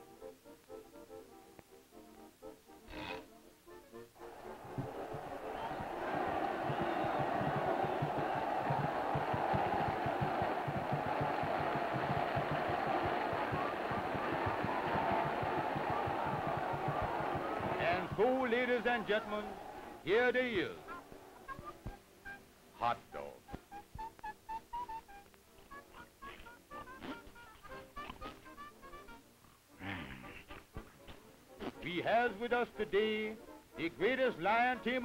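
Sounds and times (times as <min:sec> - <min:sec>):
light cartoon music: 0:00.0 - 0:35.0
crowd murmur: 0:04.2 - 0:20.1.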